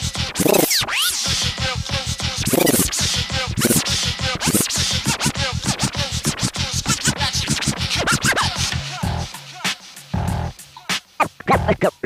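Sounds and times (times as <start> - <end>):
vinyl record scratching: 0.0 - 9.8, 10.9 - 12.0
backing beat: 0.0 - 12.0.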